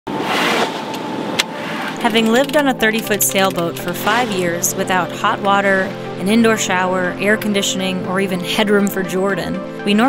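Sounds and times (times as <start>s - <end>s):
sharp clicks: 1.9s - 4.2s
water rushing past boat: 2.8s - 8.6s
wind rushing: 3.8s - 6.2s.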